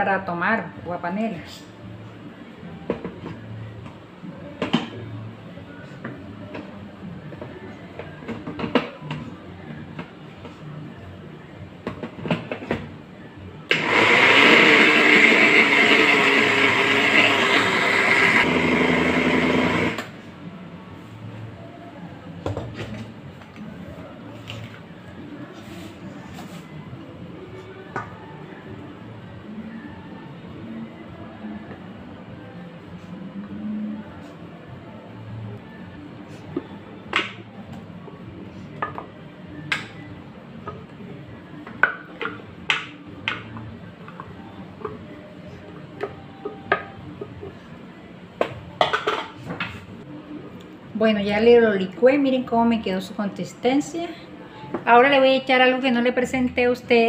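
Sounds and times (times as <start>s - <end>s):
blender running: 13.7s - 20.2s.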